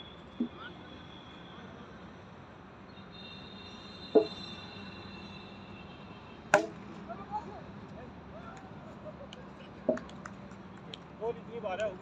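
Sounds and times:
cricket bat striking ball: 4.1 - 4.4, 6.5 - 6.8.

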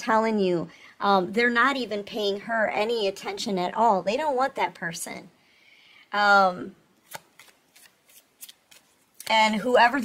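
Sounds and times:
cards snapping and flicking: 7.0 - 9.3.

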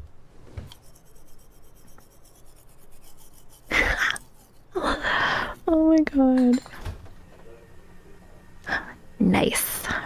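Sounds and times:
toothbrush scrubbing teeth: 0.7 - 5.8.

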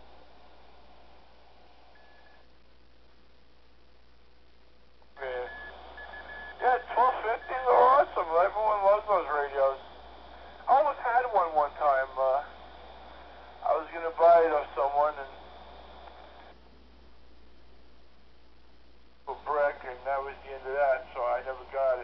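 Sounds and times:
radio hiss: 4.1 - 16.6, 19.1 - 22.0
man talking over radio: 5.2 - 5.8, 6.5 - 16.3, 19.3 - 22.0
radio tone: 5.2 - 16.6.

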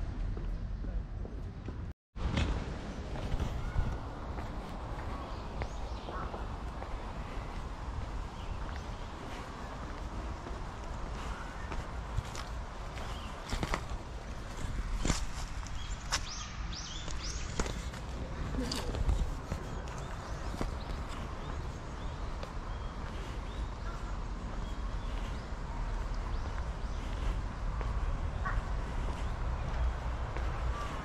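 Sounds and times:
wind rumble on microphone: 0.0 - 31.0
footsteps on pavement: 0.3 - 31.0.

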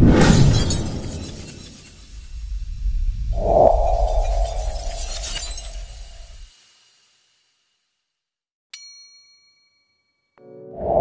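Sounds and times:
glass shattering: 0.2 - 2.2, 4.7 - 6.4
low rumble: 2.5 - 6.4.

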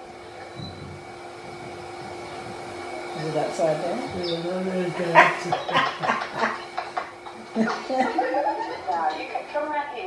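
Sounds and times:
people talking: 3.1 - 10.0
bursts of laughter: 5.2 - 9.0.

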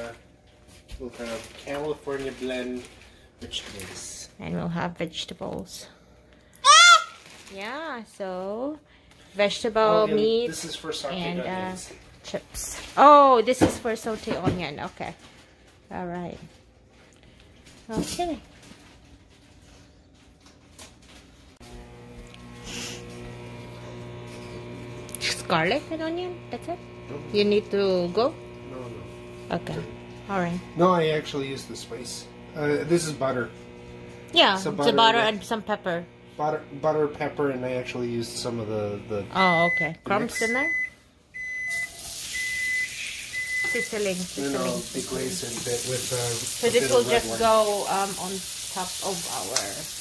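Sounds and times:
electrical hum with buzz: 20.8 - 50.0
onion sizzling in butter: 21.6 - 39.6, 41.7 - 50.0
high electronic beep: 39.4 - 44.0.

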